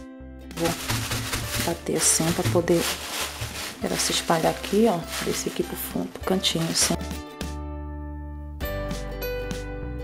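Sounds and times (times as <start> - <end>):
soft background music: 0.0 - 10.0
sand pouring into plastic bag: 0.6 - 7.0
plastic crinkling: 0.6 - 7.2.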